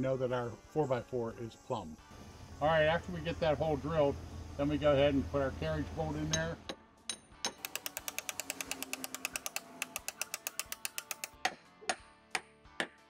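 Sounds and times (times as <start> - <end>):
hammer pounding bolt: 7.1 - 13.0
fast even ticking: 7.6 - 11.4.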